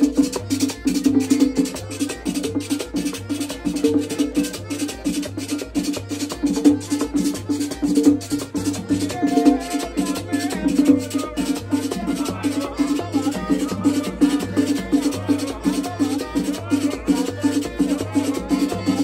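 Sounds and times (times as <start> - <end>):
accordion melody: 0.0 - 19.0
drum beat: 0.0 - 19.0.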